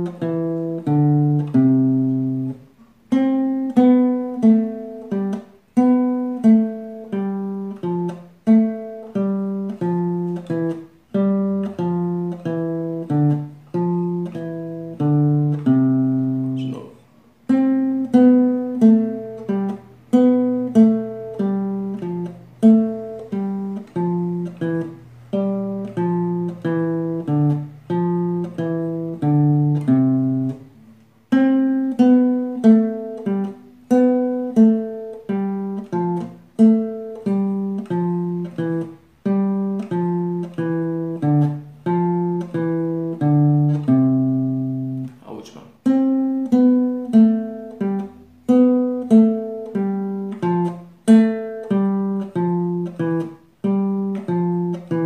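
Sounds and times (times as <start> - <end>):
classical guitar plucked notes: 0.0 - 55.0.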